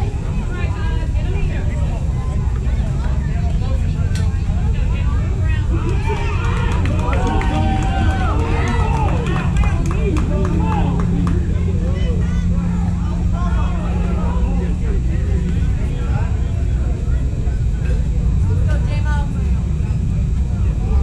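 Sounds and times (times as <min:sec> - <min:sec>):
low rumble: 0:00.0 - 0:21.0
players and spectators shouting: 0:05.0 - 0:15.2.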